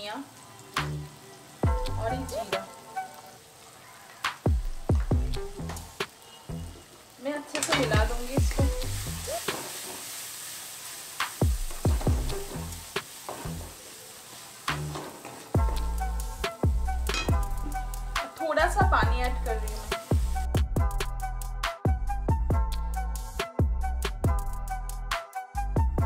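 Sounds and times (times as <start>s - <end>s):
food sizzling: 0.0s - 25.7s
music with heavy bass: 0.9s - 2.4s, 4.5s - 6.0s, 11.4s - 13.0s, 15.6s - 26.0s
spatula scraping a pan: 9.2s - 10.5s, 11.8s - 15.6s.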